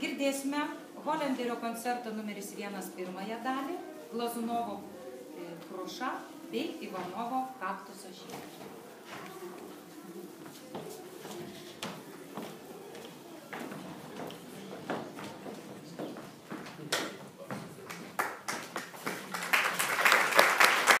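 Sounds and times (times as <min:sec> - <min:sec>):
audience applause: 0:17.9 - 0:21.0.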